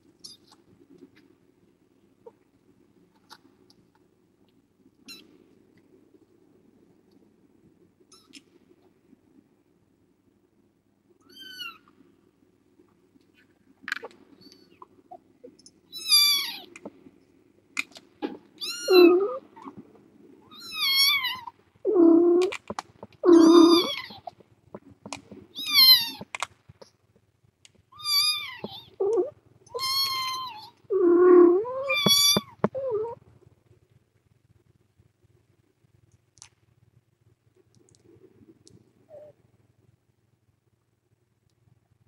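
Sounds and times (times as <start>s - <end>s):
kittens meowing: 11.2s - 11.9s, 15.9s - 16.8s, 18.2s - 19.8s, 20.4s - 24.4s, 25.6s - 26.4s, 28.0s - 33.2s
lower louder meows: 18.6s - 19.7s, 23.2s - 24.3s, 28.0s - 33.2s.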